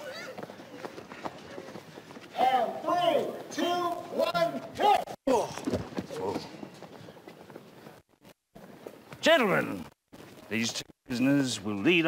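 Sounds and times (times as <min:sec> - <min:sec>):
footsteps on dirt: 0:05.4 - 0:11.0.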